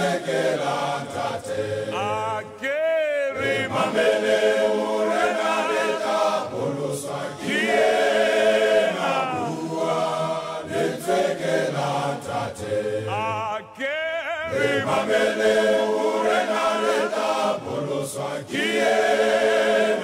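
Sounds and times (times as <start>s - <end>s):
male choir singing a cappella: 0.0s - 20.0s.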